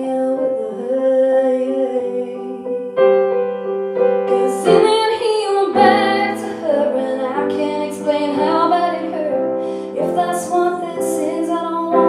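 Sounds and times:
woman singing: 0:00.0 - 0:03.0, 0:04.2 - 0:12.0
piano chords: 0:00.0 - 0:12.0.

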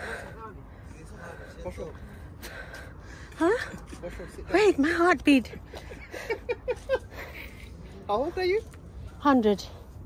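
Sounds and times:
person breathing hard: 0:00.0 - 0:03.5.

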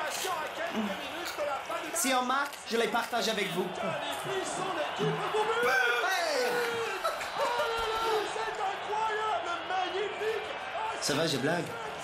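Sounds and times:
overlapping indistinct voices: 0:00.0 - 0:12.0.

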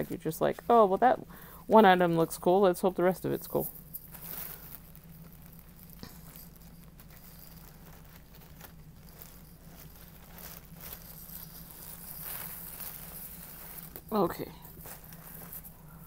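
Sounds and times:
plastic bag crinkling: 0:00.0 - 0:16.0.

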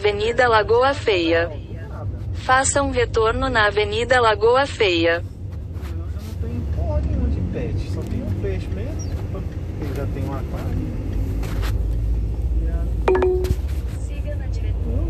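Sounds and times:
car road and engine rumble: 0:00.0 - 0:15.0
short steady beep: 0:13.1 - 0:13.7.

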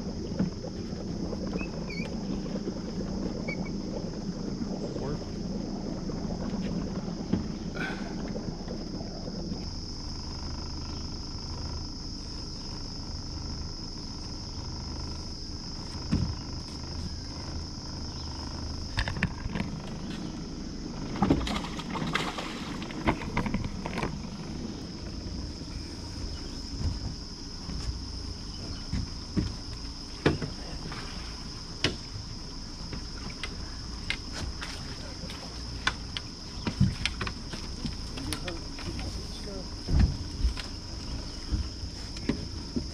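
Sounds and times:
high-pitched insect chorus: 0:00.0 - 0:42.9
low boat rumble: 0:00.0 - 0:42.9
knocks on aluminium boat: 0:16.0 - 0:16.5, 0:26.7 - 0:30.7, 0:39.8 - 0:42.9
water splashes: 0:18.9 - 0:42.9.

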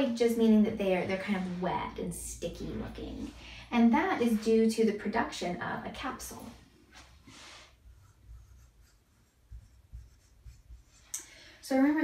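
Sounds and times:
marker scratching on whiteboard: 0:07.6 - 0:11.1.

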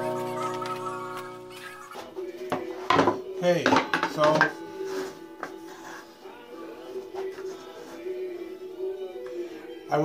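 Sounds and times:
song playing: 0:00.0 - 0:10.0.

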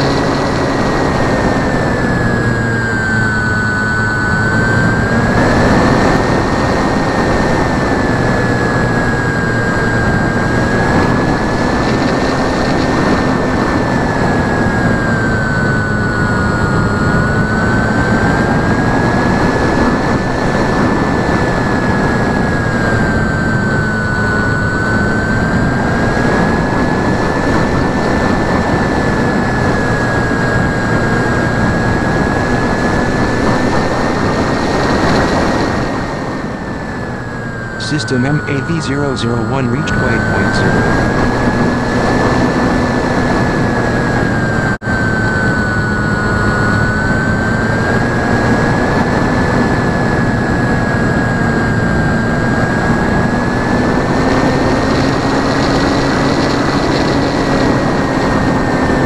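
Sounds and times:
model airplane motor whine: 0:00.0 - 0:37.8, 0:40.7 - 0:59.0
wind rush on microphone: 0:00.0 - 0:37.8.

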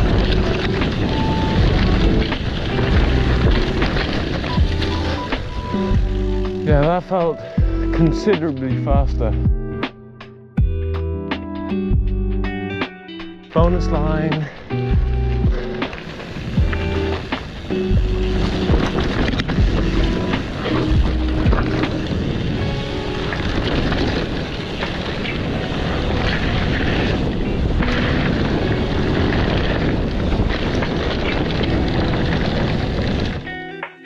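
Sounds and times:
mountain bike on dirt trail: 0:00.0 - 0:08.6, 0:13.6 - 0:33.8
wind rushing on microphone: 0:00.0 - 0:09.5, 0:13.6 - 0:33.6
background music: 0:00.0 - 0:24.3.

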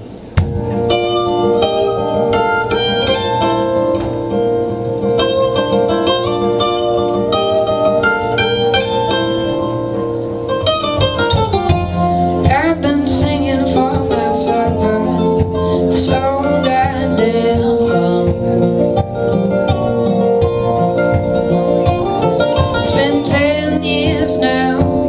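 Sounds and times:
acoustic guitar: 0:00.0 - 0:25.0
mandolin picking melody: 0:00.0 - 0:25.0
person singing: 0:12.3 - 0:20.3, 0:22.3 - 0:25.0.

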